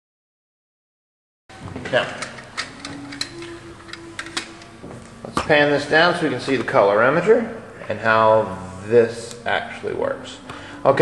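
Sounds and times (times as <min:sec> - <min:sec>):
faint steady hum: 0:01.6 - 0:11.0.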